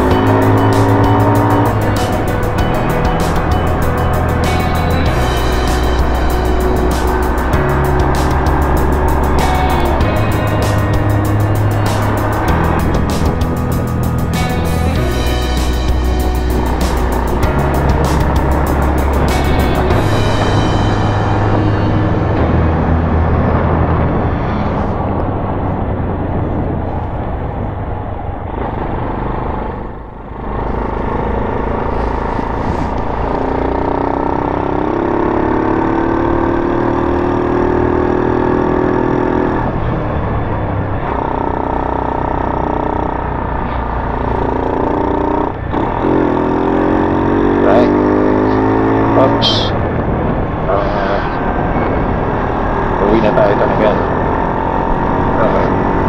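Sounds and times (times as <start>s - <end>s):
small motorcycle engine running: 0.0s - 22.5s
steady rushing noise: 0.0s - 56.0s.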